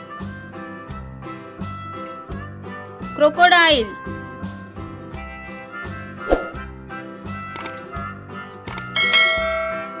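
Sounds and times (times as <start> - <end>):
background music: 0.0 - 10.0
quick double click: 7.5 - 7.8.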